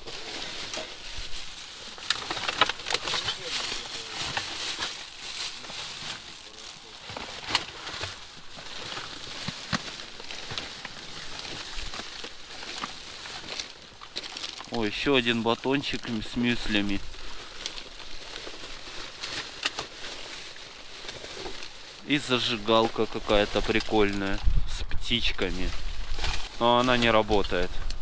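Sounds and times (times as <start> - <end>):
plastic bags and paper rustling: 0.0 - 28.0
sharp crackles: 0.0 - 28.0.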